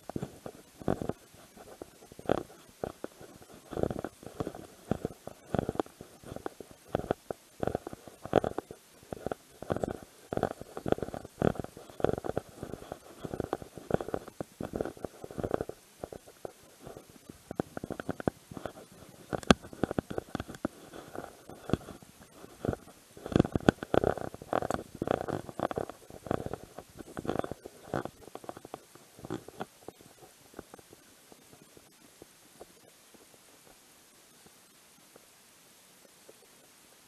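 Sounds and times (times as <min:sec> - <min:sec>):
clothing rubbing on camera microphone: 0:00.0 - 0:32.0.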